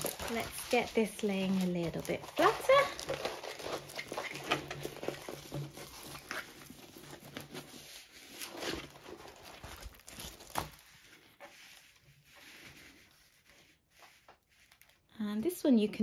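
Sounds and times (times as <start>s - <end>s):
plastic film crinkling: 0.0s - 16.0s.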